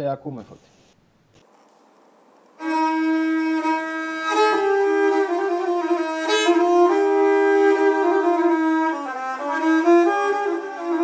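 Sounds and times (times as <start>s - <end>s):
bowed lyra: 2.6s - 11.0s.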